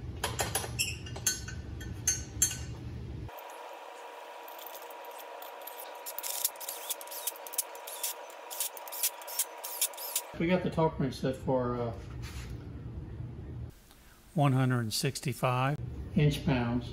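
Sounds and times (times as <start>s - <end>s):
faint steady hum: 0.0s - 16.9s.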